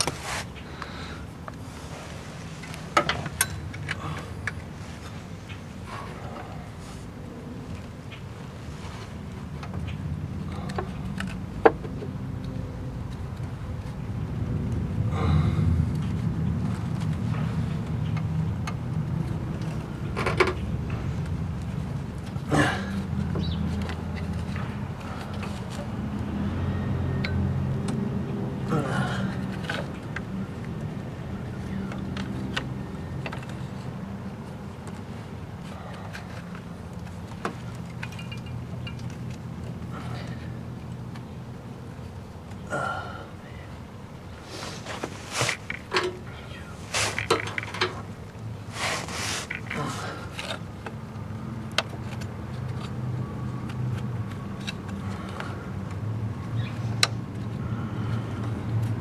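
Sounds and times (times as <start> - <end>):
steady low rumble: 0.5 - 48.8
clicks and knocks of belt and metal: 1.5 - 6.6, 15.9 - 26.2, 28.6 - 42.6, 44.7 - 59.0.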